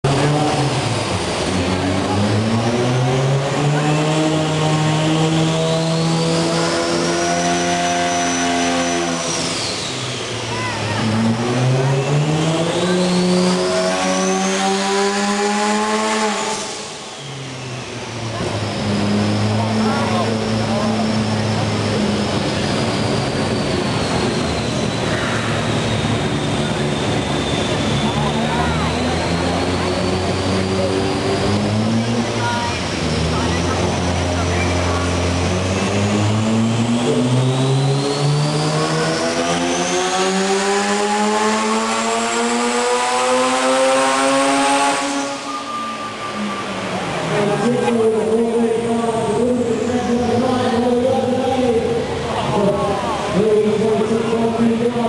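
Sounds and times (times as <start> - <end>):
rotary engine revving: 0.0 - 55.0.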